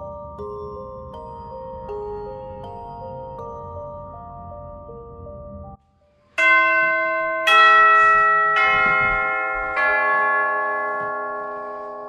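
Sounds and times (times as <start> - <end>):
bell chime ringing: 6.4 - 12.0.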